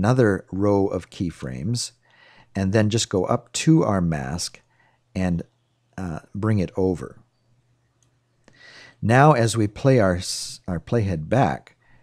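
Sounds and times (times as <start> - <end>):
short breath: 2.0 - 2.6, 4.6 - 5.1, 8.5 - 9.0.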